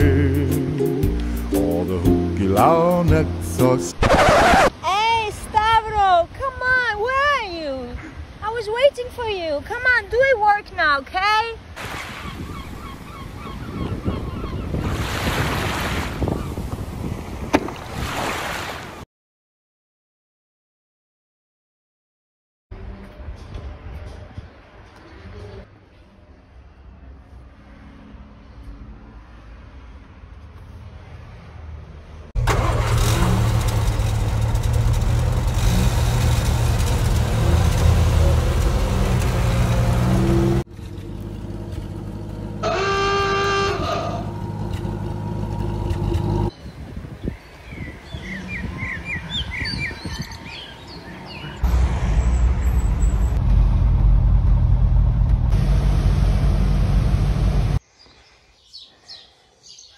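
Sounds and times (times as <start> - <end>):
traffic hum: 0.0 - 17.6, 22.8 - 58.4
road noise: 0.0 - 18.8, 22.7 - 59.9
waves washing onto beach: 11.8 - 12.4, 14.8 - 16.2, 17.7 - 19.0
wind buffeting microphone: 12.0 - 18.1, 46.5 - 51.2
car engine running loudly: 32.4 - 42.8, 51.6 - 57.8.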